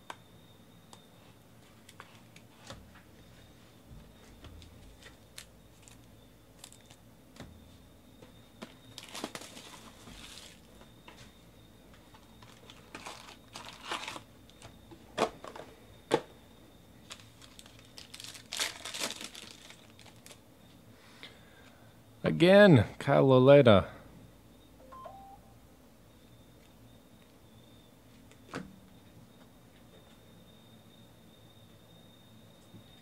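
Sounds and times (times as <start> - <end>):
wrappers crinkling and tearing: 5.0 - 7.0, 9.0 - 10.7, 12.4 - 14.3, 17.0 - 20.4.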